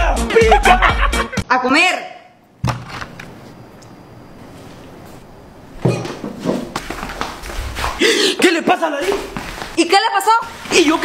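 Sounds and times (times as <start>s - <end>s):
man coughing and gasping: 8.0s - 8.5s.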